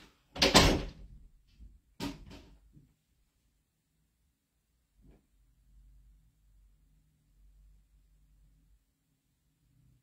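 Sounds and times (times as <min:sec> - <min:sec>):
door slamming shut: 0:00.4 - 0:01.1.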